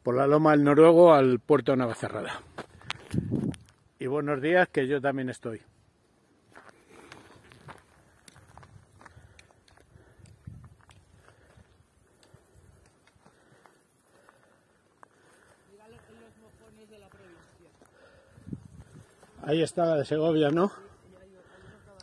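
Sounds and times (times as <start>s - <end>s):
footsteps on dirt path: 1.8s - 4.0s, 5.7s - 22.0s.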